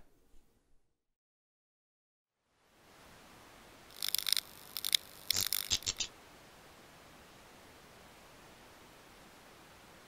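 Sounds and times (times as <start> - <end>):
faint steady hiss: 2.4 - 10.0
glitchy digital crackling snaps: 3.9 - 6.1.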